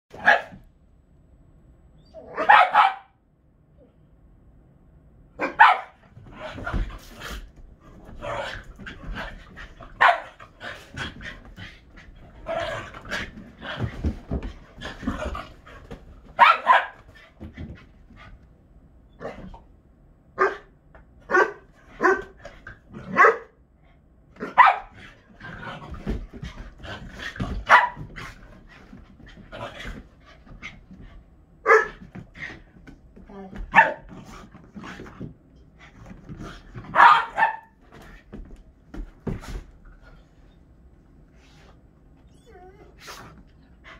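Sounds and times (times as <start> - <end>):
dogs barking: 2.3 - 3.2, 5.4 - 6.0, 10.0 - 10.4, 16.4 - 17.0, 24.4 - 24.9, 27.7 - 28.0, 36.9 - 37.8.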